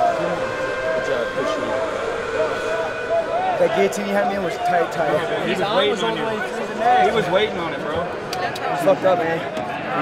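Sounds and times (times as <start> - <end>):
chatter of voices in arena: 0.0 - 10.0.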